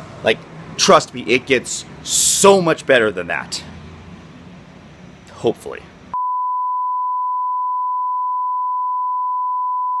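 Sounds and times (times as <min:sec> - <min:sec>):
steady test tone beep: 0:06.1 - 0:10.0.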